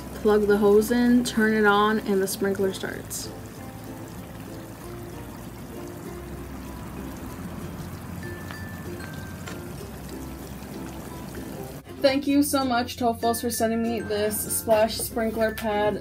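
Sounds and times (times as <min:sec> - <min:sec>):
sprinkler water splashing: 0:00.0 - 0:11.9
soft background music: 0:00.0 - 0:16.0.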